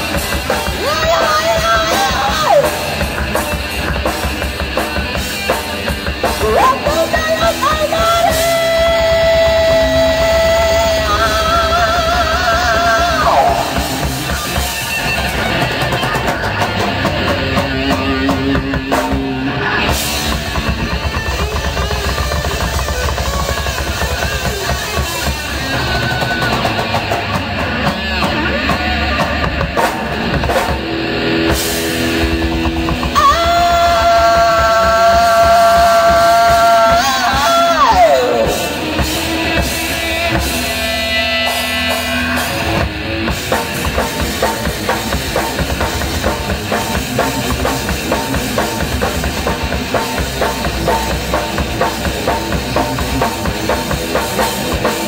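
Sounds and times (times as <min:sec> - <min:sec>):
live rock band playing: 0:00.0 - 0:55.0.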